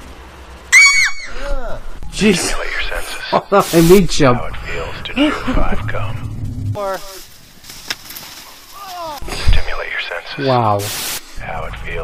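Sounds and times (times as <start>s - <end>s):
man laughing: 4.6s - 6.1s.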